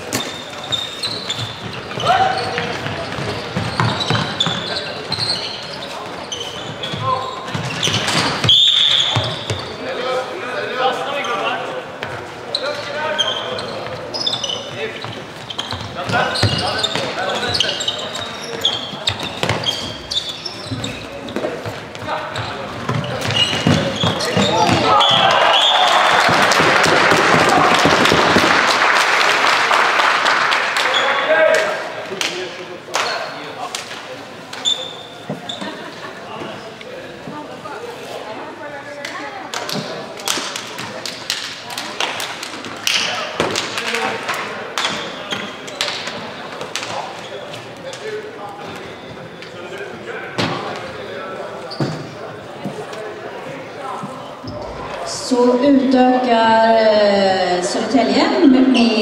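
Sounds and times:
shoe squeaks on floor: 0.0 - 10.0, 11.1 - 11.6, 12.5 - 25.8, 34.5 - 36.6, 44.8 - 47.8, 48.6 - 49.6, 51.6 - 53.0, 54.0 - 54.9
players calling out: 22.0 - 28.6
crowd cheering and clapping: 24.8 - 31.6.

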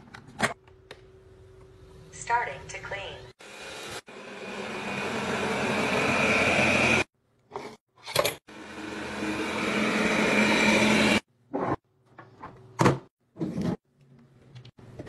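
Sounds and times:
suction fan rushing: 3.4 - 7.1.

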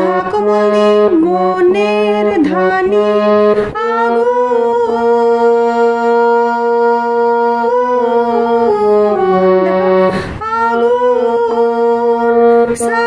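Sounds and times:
harmonium playing slow melody: 0.0 - 13.0.

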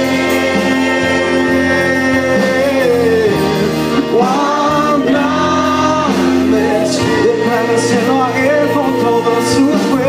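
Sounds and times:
voices singing long notes: 0.0 - 10.0
worship band playing: 0.0 - 10.0.

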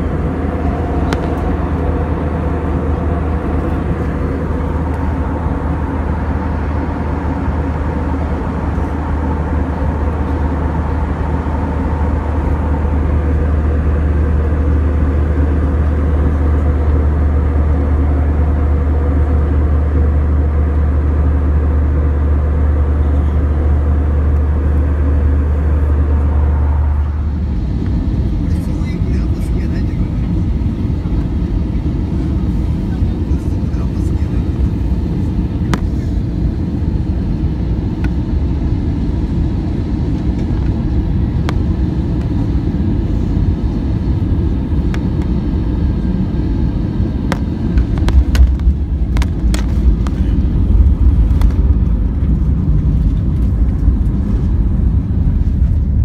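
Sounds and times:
jet engine and airflow hum: 0.0 - 56.0
rough jet rumble: 0.0 - 56.0.

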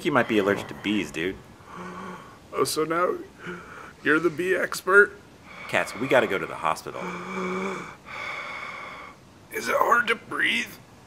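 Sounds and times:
low voiced groan: 0.0 - 4.7, 5.5 - 8.1
man breathing hard: 0.2 - 2.5, 3.4 - 4.6, 5.4 - 9.2.

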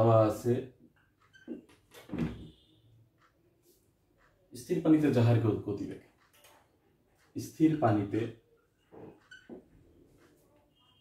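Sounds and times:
marker squeak: 1.2 - 1.8, 9.0 - 9.6.

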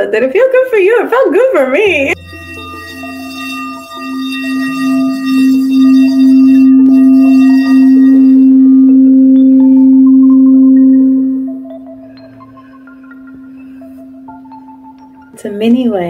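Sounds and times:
crystal singing bowl tone: 2.1 - 16.0.

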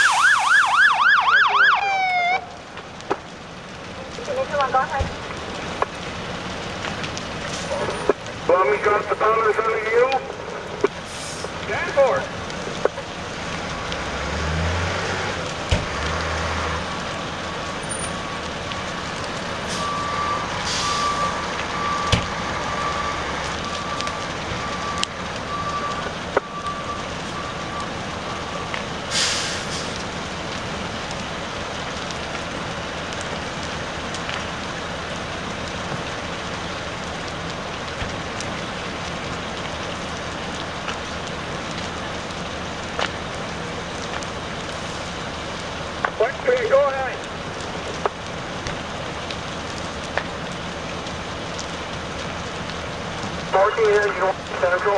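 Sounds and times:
engine and fire noise: 0.0 - 54.9.

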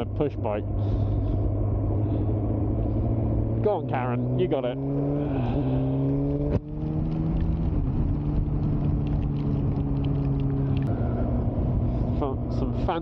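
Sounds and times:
motorcycle engine cruising: 0.0 - 13.0.

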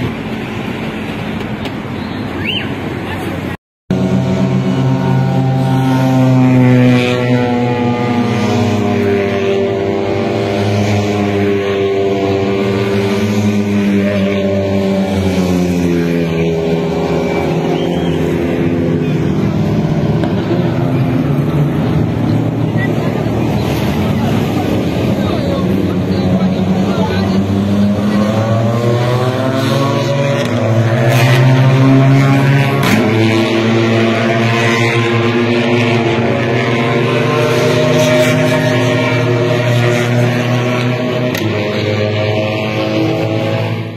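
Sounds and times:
crowd voices: 0.0 - 43.9
engine drone: 0.0 - 43.9.

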